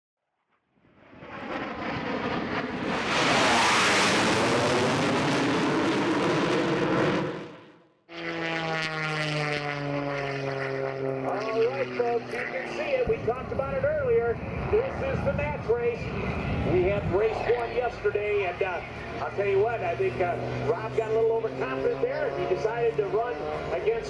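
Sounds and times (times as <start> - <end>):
jet-like roar: 0.8 - 24.0
propeller aircraft engine droning: 0.8 - 24.0.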